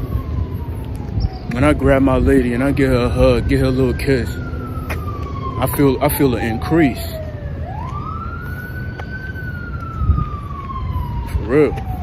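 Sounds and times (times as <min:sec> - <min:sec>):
emergency siren wailing: 0:00.0 - 0:12.0.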